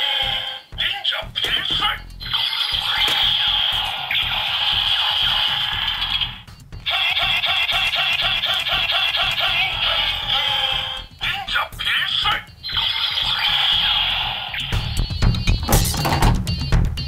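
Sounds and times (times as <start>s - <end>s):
toy blaster sound effects: 0.0s - 16.1s
rhythmic electronic jingle: 0.0s - 17.0s.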